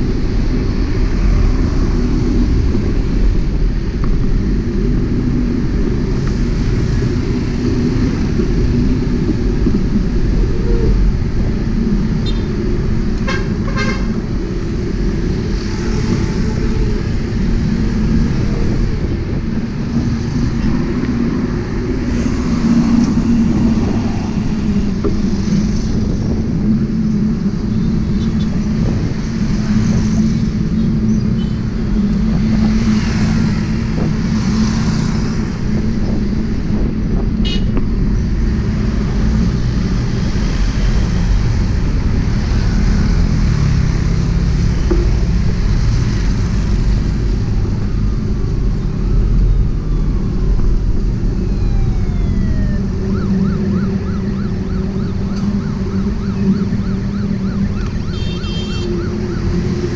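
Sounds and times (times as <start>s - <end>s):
motorcycles passing: 0.0s - 59.9s
road traffic rushing: 0.0s - 59.9s
wind: 0.0s - 59.9s
siren wailing: 47.0s - 59.9s.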